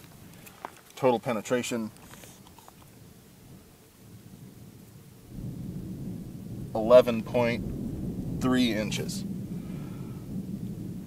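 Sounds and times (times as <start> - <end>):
wind buffeting microphone: 2.9 - 11.0.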